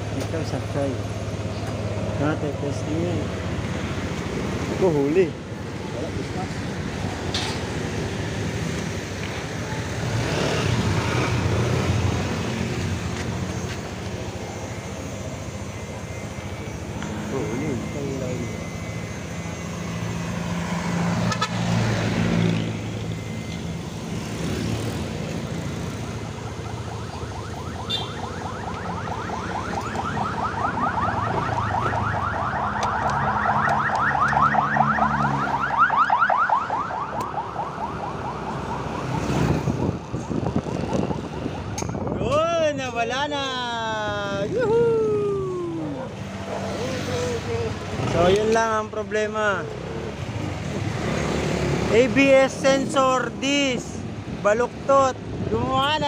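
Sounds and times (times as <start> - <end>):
fast warbling siren: 14.0 - 41.8, 43.7 - 47.8.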